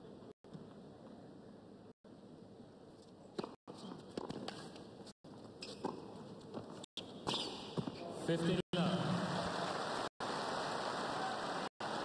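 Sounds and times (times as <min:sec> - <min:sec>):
racket striking tennis ball: 0:03.3 - 0:04.9, 0:05.6 - 0:08.0
tennis ball bouncing: 0:03.3 - 0:08.0.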